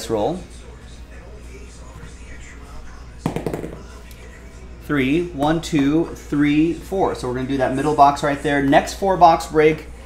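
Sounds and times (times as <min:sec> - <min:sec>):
die clattering on a table: 0:03.3 - 0:03.9.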